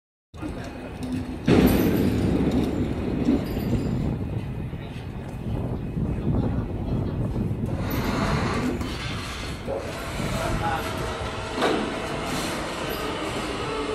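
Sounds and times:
hard wheels rolling over concrete: 0.4s - 13.9s.

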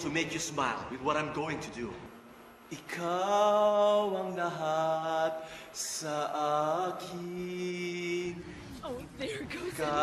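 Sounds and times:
man singing: 2.7s - 8.5s, 9.6s - 10.0s.

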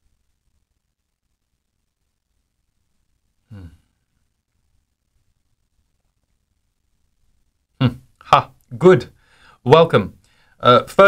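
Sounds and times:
man sighing: 3.4s - 4.1s.

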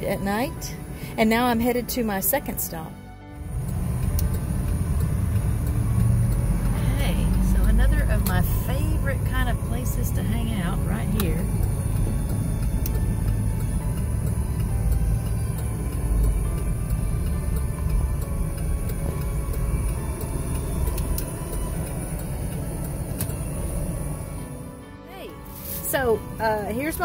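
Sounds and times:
car road and wind noise: 0.0s - 24.8s, 25.4s - 27.0s.

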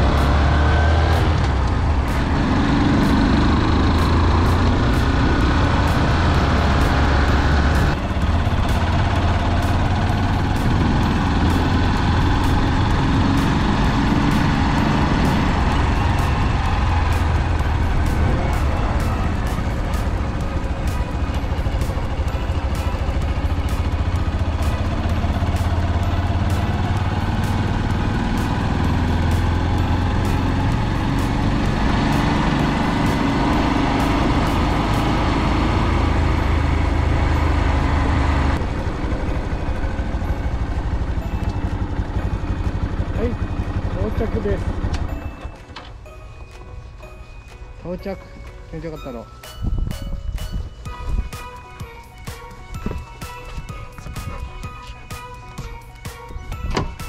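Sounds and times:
motorcycle engine cruising: 0.0s - 48.1s, 49.7s - 57.0s
wind and road noise: 0.0s - 57.0s.

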